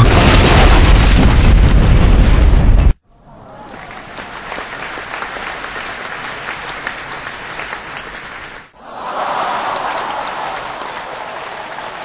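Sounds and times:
crowd applauding: 3.5s - 12.0s.

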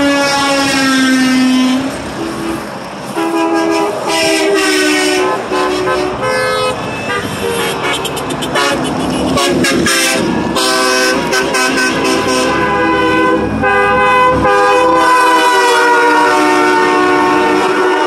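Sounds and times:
highway traffic rushing: 0.0s - 18.0s
truck air horn blast: 0.0s - 18.0s
car horn toots: 1.6s - 18.0s.

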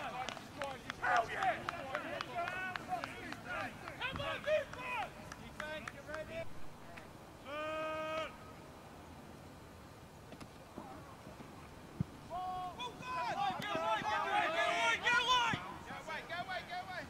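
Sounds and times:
players shouting calls: 0.0s - 8.8s, 12.2s - 17.0s
sharp claps or knocks: 0.2s - 6.3s.

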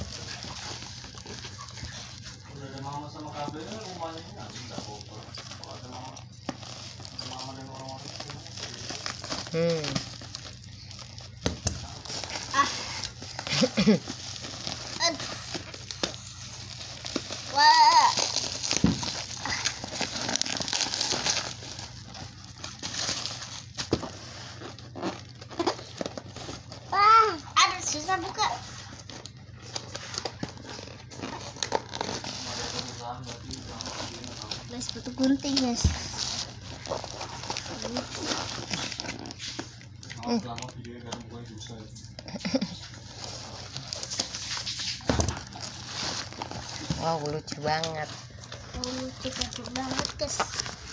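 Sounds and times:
plastic bag crinkling: 0.0s - 50.9s.

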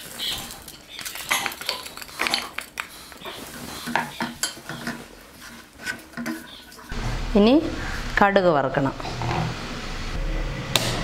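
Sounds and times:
spatula scraping frying pan: 0.0s - 7.2s.

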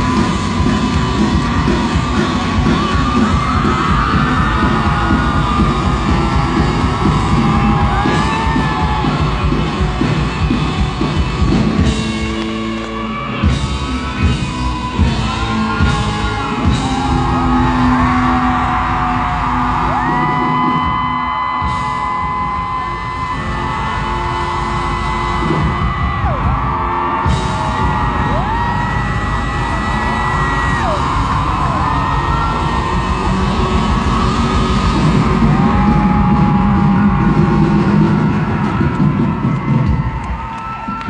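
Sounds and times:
crowd yelling and whooping: 0.0s - 41.0s
live rock band playing: 0.0s - 41.0s.

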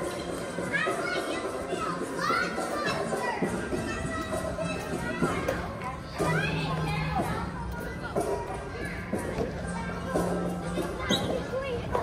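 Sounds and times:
background music: 0.0s - 12.0s
children calling and shouting: 0.0s - 12.0s.

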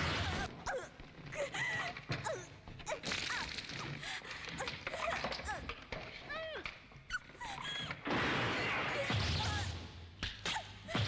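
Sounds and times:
woman whimpering in pain: 0.3s - 8.0s.

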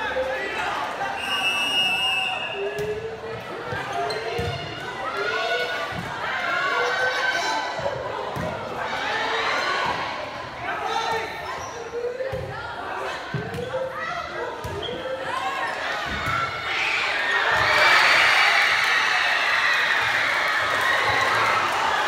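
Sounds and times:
crowd cheering and shouting: 0.0s - 22.0s
murmur of voices: 0.0s - 22.0s.

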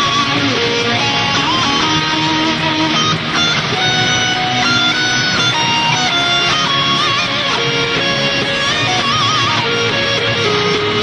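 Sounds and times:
distorted electric guitar lead: 0.0s - 11.0s.

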